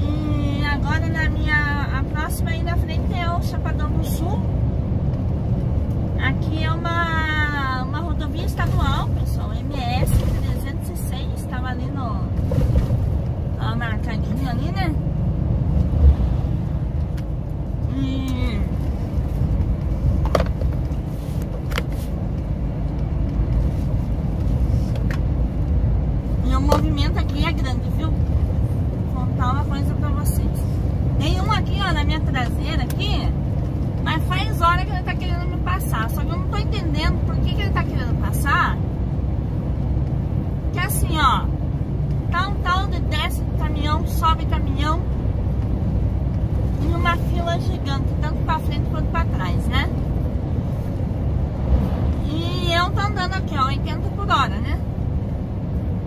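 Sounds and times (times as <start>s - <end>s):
diesel truck engine drone: 0.0s - 56.0s.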